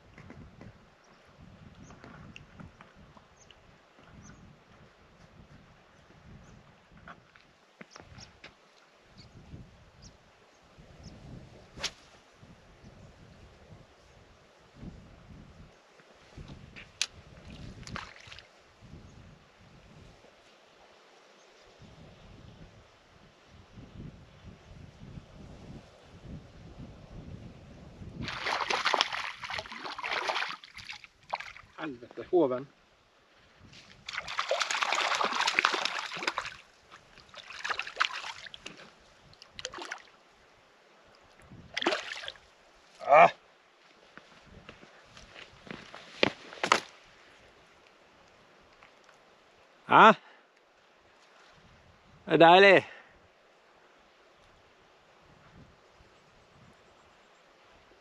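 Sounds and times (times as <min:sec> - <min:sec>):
gusty wind rumble: 0:21.8 - 0:28.5
fish splashing at surface: 0:28.2 - 0:31.8, 0:34.0 - 0:38.8, 0:41.8 - 0:42.4.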